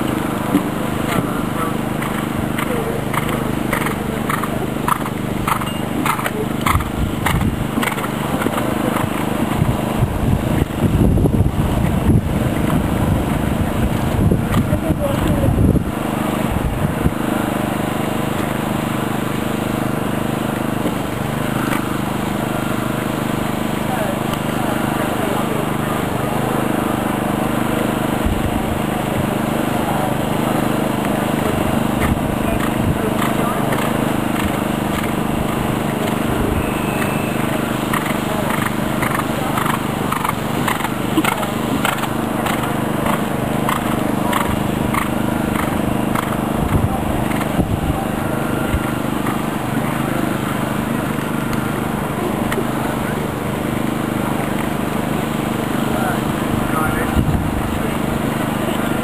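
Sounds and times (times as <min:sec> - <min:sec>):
horse hoofbeats on sand: 0:00.0 - 0:15.6, 0:31.6 - 0:47.8
steady low hum: 0:00.0 - 0:59.0
heavy low thumps: 0:09.4 - 0:17.1.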